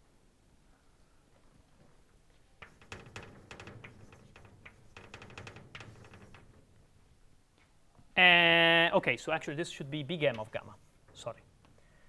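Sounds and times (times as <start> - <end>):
chalk tapping and scratching: 2.6 - 6.7.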